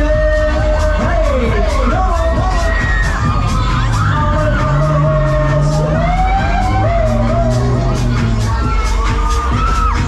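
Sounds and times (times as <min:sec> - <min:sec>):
loud dance music: 0:00.0 - 0:10.0.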